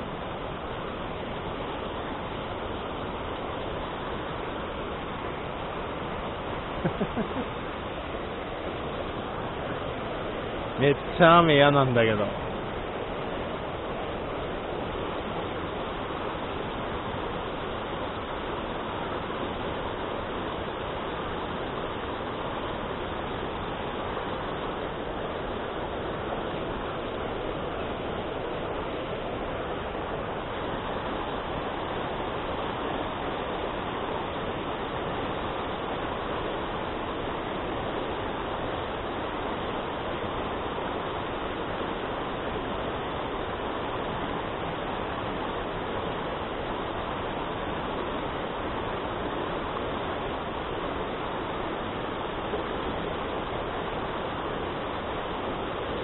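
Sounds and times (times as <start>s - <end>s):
water rushing over rocks: 0.0s - 56.0s.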